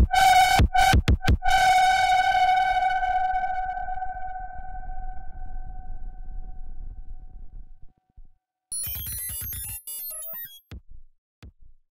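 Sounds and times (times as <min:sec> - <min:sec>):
sustained synthesizer note: 0:00.0 - 0:07.9.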